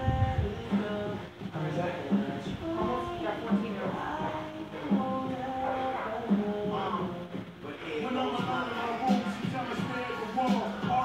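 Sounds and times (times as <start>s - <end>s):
music with steady beat and vocals: 0.0s - 11.0s.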